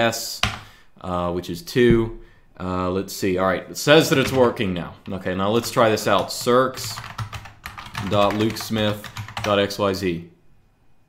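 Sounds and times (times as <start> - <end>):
man speaking: 1.0 - 7.1, 7.9 - 10.4.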